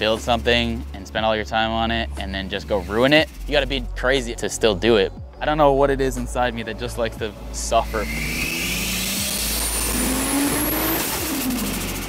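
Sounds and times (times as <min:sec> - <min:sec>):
car engine accelerating: 0:00.0 - 0:12.0
high turbo whistle: 0:07.3 - 0:12.0.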